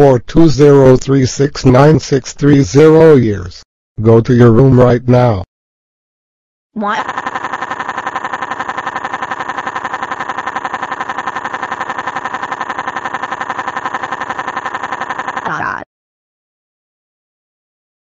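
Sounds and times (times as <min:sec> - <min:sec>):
synthesized voice pulsing: 0:06.8 - 0:15.9.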